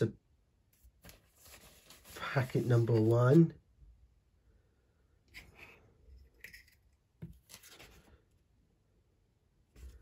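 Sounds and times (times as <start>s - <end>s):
faint rustling and scraping: 0.7s - 3.5s, 5.3s - 8.3s.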